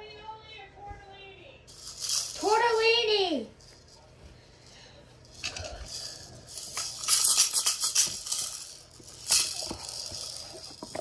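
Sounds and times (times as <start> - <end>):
wrapping crackling: 5.2 - 11.0.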